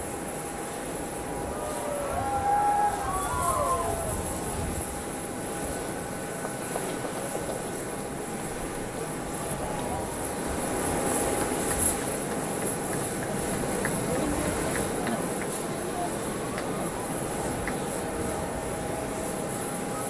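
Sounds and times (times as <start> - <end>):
jet turbine whine and hum: 0.0 - 20.0.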